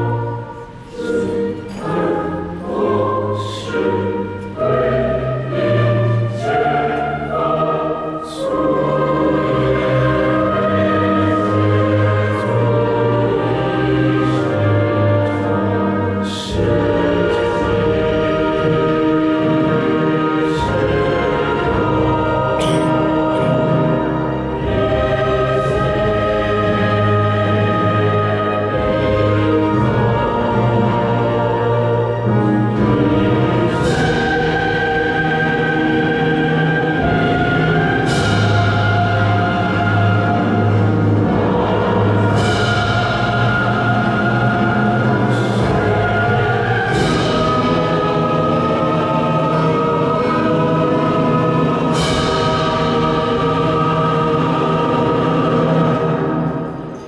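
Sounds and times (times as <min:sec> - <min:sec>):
choir singing anthem: 0:00.0 - 0:57.0
orchestra accompaniment: 0:00.0 - 0:57.0.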